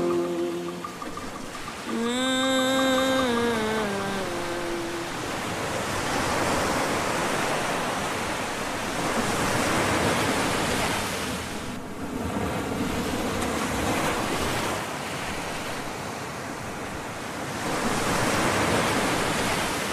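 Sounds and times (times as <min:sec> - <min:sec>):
ocean waves washing ashore: 0:00.0 - 0:19.9.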